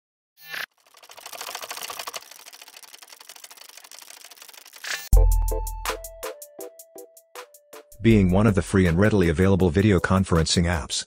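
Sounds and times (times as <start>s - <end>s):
dense fast crackle of clicks: 0.7s - 5.1s.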